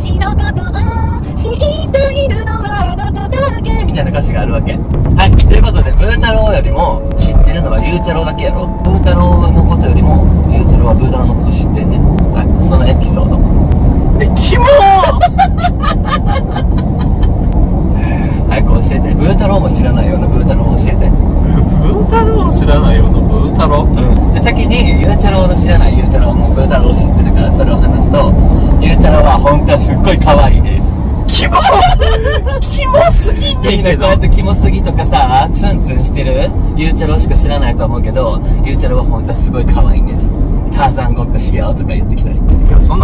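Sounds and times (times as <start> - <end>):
car interior rumble: 0.0 - 43.0
men talking: 4.0 - 13.5, 18.0 - 43.0
men laughing: 15.0 - 17.4, 31.4 - 34.1.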